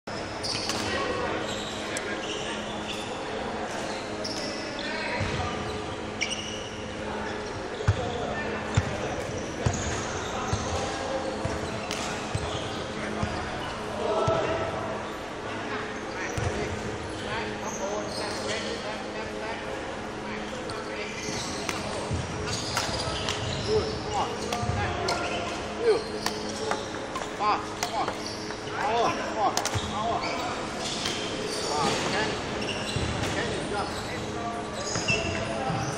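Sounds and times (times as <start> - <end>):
shoe squeak: 0.1 - 13.8, 16.0 - 18.8, 20.3 - 35.9.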